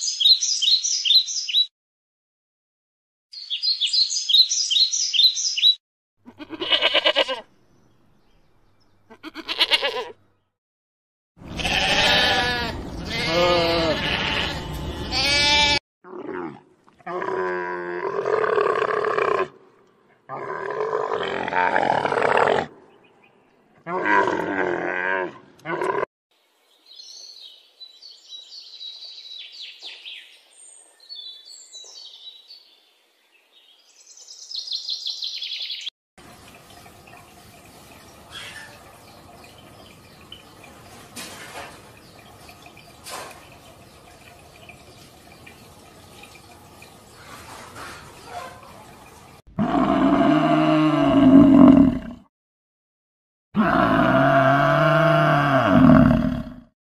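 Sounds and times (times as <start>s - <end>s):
livestock bleating: 6.2s - 7.5s, 9.1s - 10.2s, 11.4s - 15.8s.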